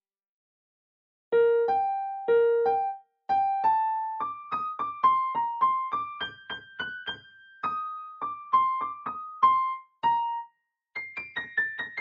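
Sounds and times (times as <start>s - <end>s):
digital piano ragtime melody: 1.4s - 12.0s.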